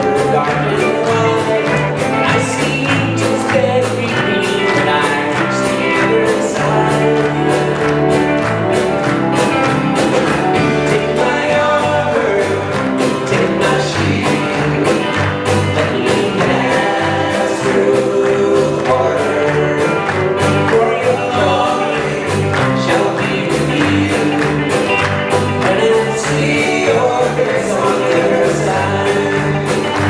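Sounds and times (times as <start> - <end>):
bass guitar: 0.0 - 30.0
drum kit beat: 0.0 - 30.0
electric guitar: 0.0 - 30.0
voices singing chorus: 10.4 - 30.0.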